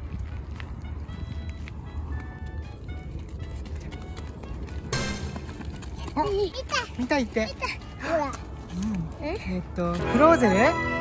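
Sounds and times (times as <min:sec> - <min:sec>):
steady low rumble: 0:00.0 - 0:10.0
high plinking background music: 0:04.9 - 0:05.6.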